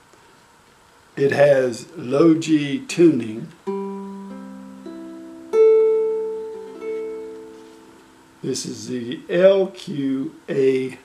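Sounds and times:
ukulele picking single notes: 3.6s - 8.5s.

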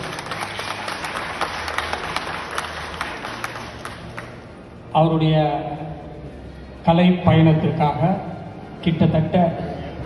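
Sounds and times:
audience applauding: 0.0s - 4.5s.

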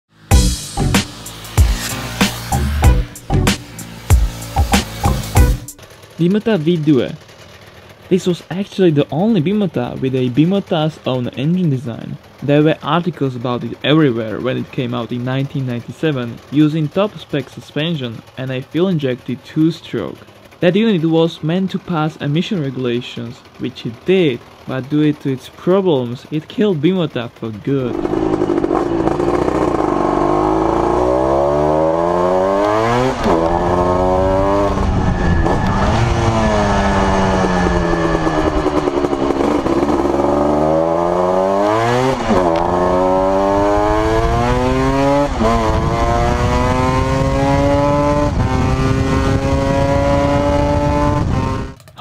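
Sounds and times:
two-stroke motorcycle engine revving: 0.1s - 52.0s.

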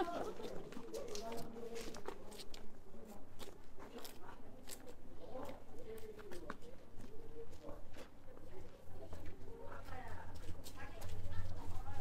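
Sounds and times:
footsteps on stone paving: 0.0s - 12.0s.

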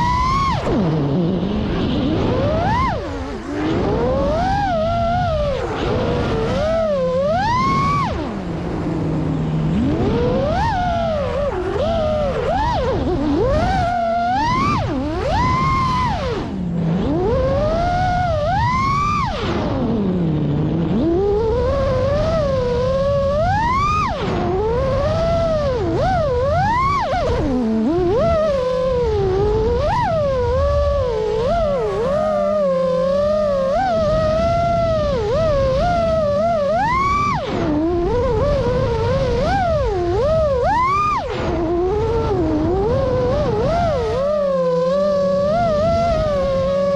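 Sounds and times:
drone motors whining: 0.0s - 46.9s.

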